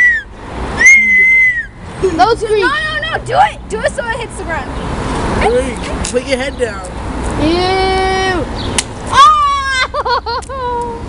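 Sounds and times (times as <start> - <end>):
girl squealing: 0.0 - 1.8, 9.1 - 11.0.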